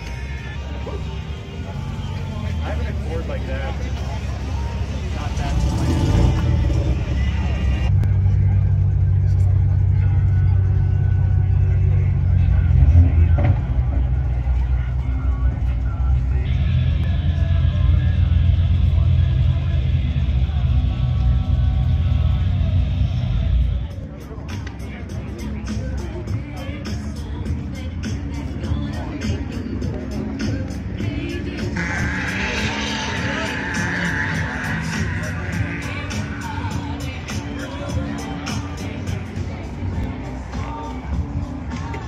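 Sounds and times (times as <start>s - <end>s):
car engine idling with deep rumble: 0.0s - 42.0s.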